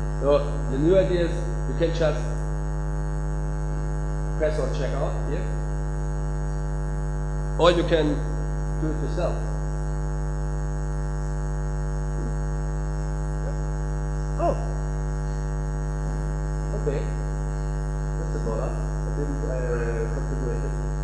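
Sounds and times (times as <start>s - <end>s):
electrical mains hum: 0.0s - 21.0s
faint voice: 14.4s - 14.8s.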